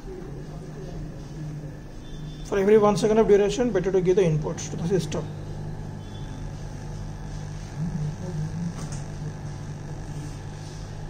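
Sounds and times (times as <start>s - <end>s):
electric motor humming: 1.3s - 11.0s.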